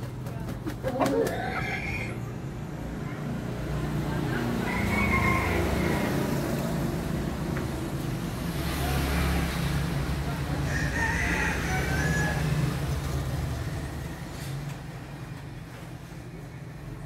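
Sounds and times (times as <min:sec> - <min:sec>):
rooster crowing: 0:04.6 - 0:06.5, 0:10.6 - 0:12.8.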